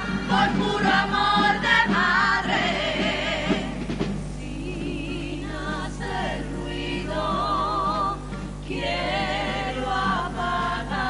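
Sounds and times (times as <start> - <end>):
women's choir singing in harmony: 0.0 - 11.0.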